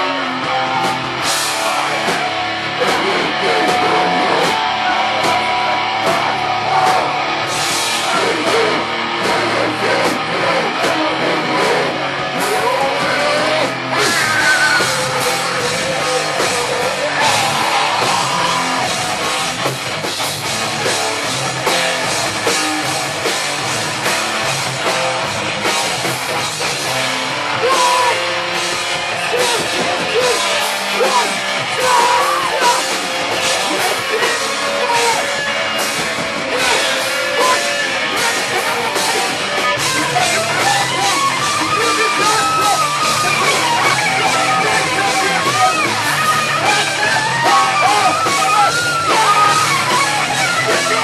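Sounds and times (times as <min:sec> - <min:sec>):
distorted electric guitars: 0:00.0 - 0:51.0
hardcore band playing: 0:00.0 - 0:51.0
pounding drum kit: 0:00.0 - 0:51.0.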